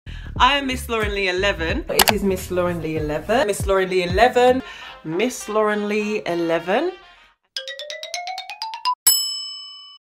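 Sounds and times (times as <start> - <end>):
bright bell-like ding: 9.1 - 10.0.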